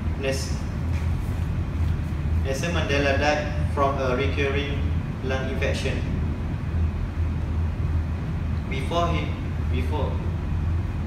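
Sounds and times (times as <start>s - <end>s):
low rumbling hum: 0.0s - 11.0s.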